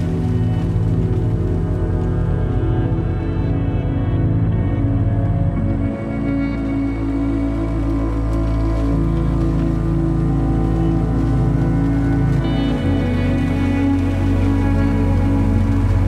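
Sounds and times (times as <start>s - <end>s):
instrumental music sustained chords: 0.0s - 16.0s.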